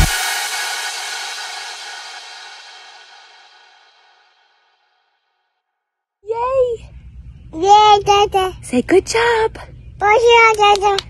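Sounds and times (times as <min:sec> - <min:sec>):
crash cymbal ringing: 0:00.0 - 0:05.3.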